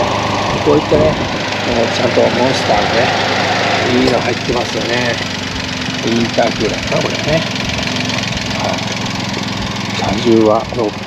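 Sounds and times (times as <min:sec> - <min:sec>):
turbo engine idling: 0:00.0 - 0:11.0.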